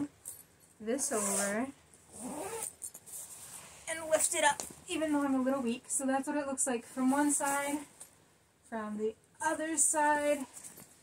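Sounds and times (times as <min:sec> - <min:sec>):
zipper being pulled: 0:01.0 - 0:03.9.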